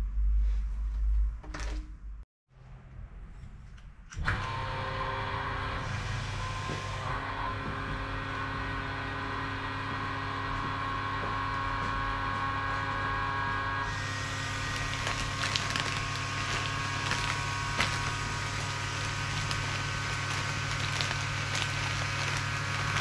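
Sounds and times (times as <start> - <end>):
vacuum pump humming: 4.2 - 23.0
plastic film crinkling: 13.9 - 23.0.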